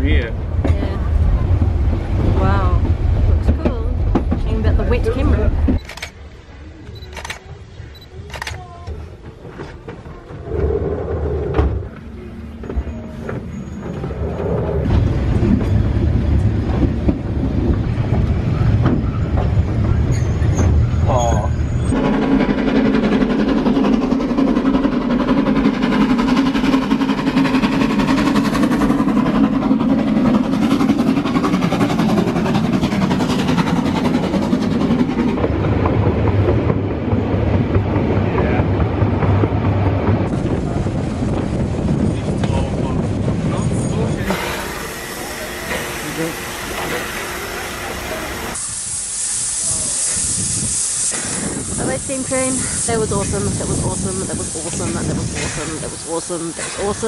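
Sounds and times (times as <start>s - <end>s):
train wheels rumbling on rails: 0.0s - 57.0s.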